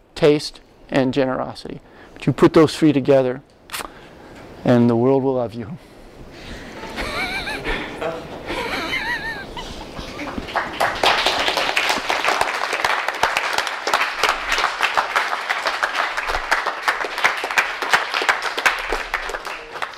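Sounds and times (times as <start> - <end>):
person laughing: 6.8 - 10.5
audience applauding: 8.9 - 19.9.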